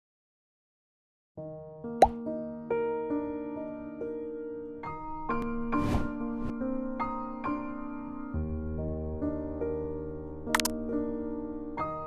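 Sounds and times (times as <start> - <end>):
soft piano music: 1.4 - 12.0.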